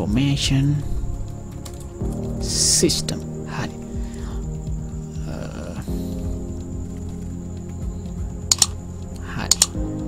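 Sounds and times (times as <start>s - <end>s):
computer mouse clicks: 8.5s - 8.8s, 9.5s - 9.8s.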